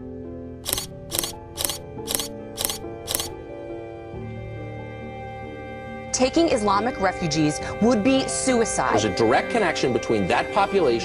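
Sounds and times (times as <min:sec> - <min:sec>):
background music: 0:00.0 - 0:11.0
camera shutter clicks: 0:00.7 - 0:03.3.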